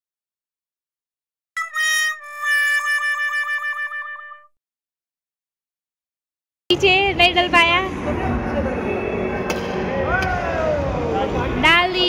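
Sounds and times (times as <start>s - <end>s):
wobbling reedy cartoon tone: 1.6s - 4.5s.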